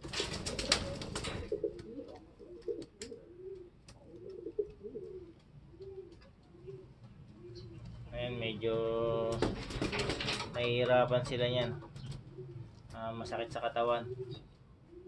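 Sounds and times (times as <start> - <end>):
rustling of handled pigeon: 0.0 - 7.6
pigeons cooing: 0.0 - 15.0.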